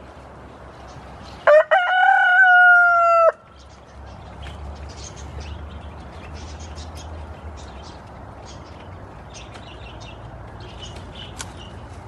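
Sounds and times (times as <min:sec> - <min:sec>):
rooster crowing: 0:01.4 - 0:03.4.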